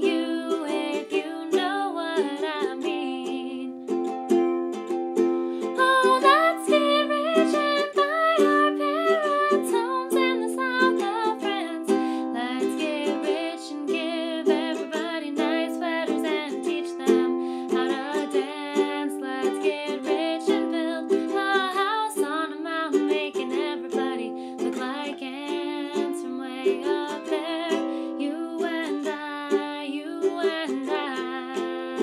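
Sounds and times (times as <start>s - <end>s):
woman singing: 0.0s - 4.2s, 5.6s - 32.0s
ukulele strummed chords: 0.0s - 32.0s.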